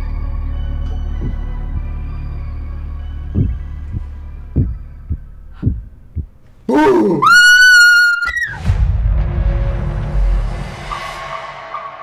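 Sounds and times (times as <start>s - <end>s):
low droning hum with organ tones: 0.0s - 6.7s
heartbeat thumps: 1.1s - 1.9s, 3.3s - 6.4s.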